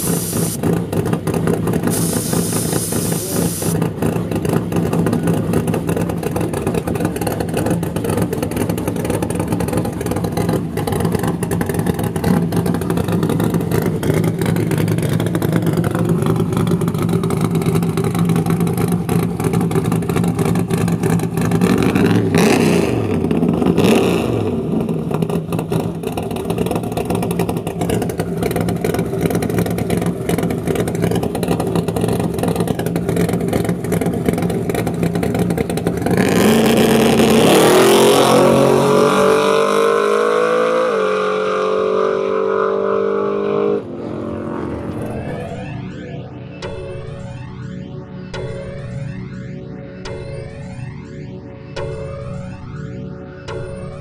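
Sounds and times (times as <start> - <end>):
truck engine idling: 0.0 - 21.6, 25.9 - 36.2
engine revving at full throttle: 0.0 - 45.8.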